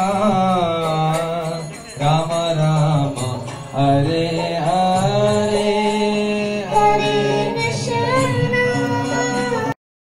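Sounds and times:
devotional chanting: 0:00.0 - 0:09.8.

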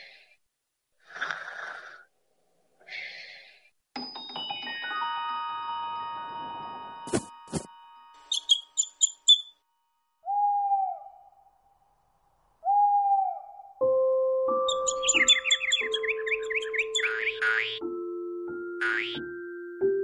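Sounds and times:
high bird chirps: 0:08.2 - 0:09.6, 0:14.6 - 0:17.8
quick bird twittering: 0:08.3 - 0:09.6, 0:14.7 - 0:17.8
owl hoots: 0:10.2 - 0:11.5, 0:12.6 - 0:13.8, 0:14.7 - 0:17.8.

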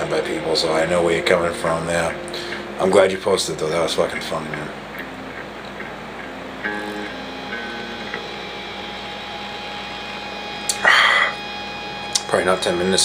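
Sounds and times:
plucked string background music: 0:00.0 - 0:10.8
man gasping: 0:10.7 - 0:11.4.

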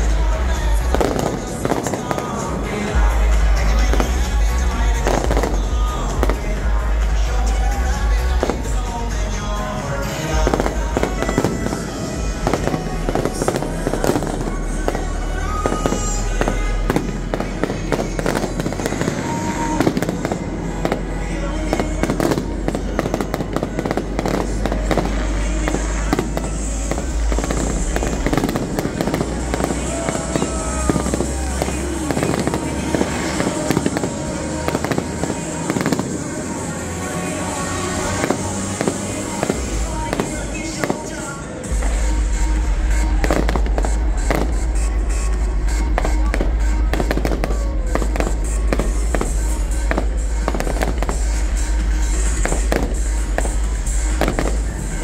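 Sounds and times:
fireworks bangs and crackling: 0:00.0 - 0:55.0.

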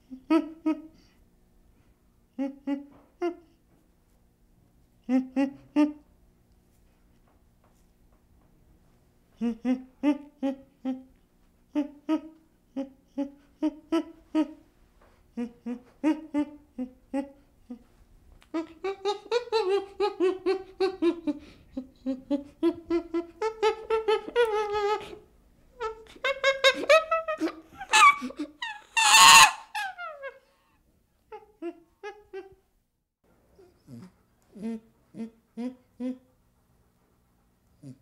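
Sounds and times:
chimpanzee hooting and screaming: 0:25.8 - 0:30.4.

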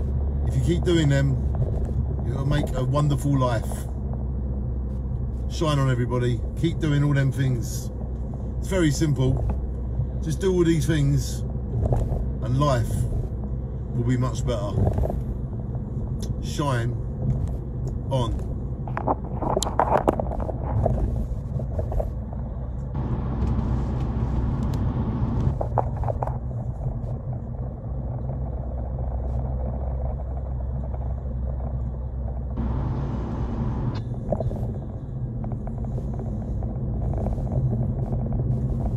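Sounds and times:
motor vehicle rumble: 0:00.0 - 0:38.9.

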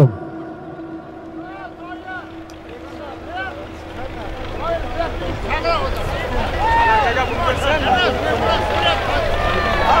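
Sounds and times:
low wind rumble: 0:00.0 - 0:09.9
distant crowd shouting: 0:00.0 - 0:10.0
tractor engine drone: 0:00.0 - 0:10.0.

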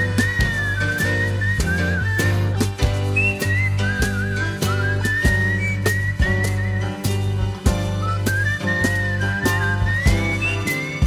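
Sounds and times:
band accompaniment: 0:00.0 - 0:11.0
drum beat: 0:00.0 - 0:11.0
whistled tune: 0:00.0 - 0:11.0.

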